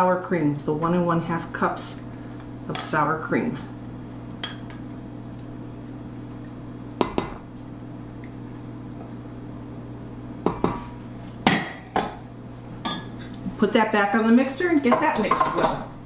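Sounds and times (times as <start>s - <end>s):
steady low hum: 0.0s - 16.0s
spatula knocking on metal bowl: 7.0s - 7.4s.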